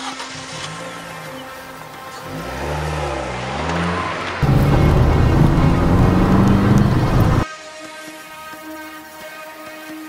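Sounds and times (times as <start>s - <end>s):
background music: 0.0s - 10.0s
car engine revving: 2.2s - 7.4s
loud steady sound: 4.4s - 7.4s.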